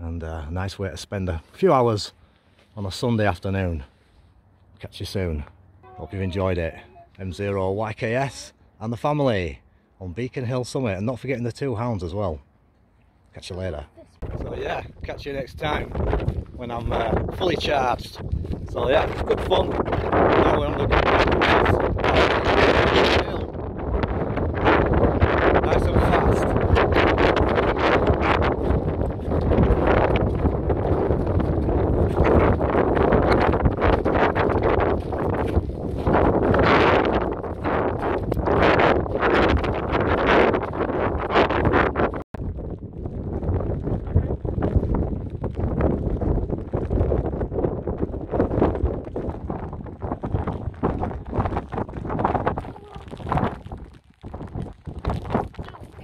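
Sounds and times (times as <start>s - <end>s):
gusty wind on microphone: 14.2s - 56.0s.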